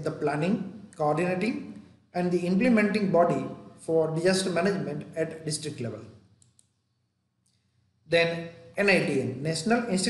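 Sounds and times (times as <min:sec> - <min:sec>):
faint clicks: 0:06.4 - 0:06.8.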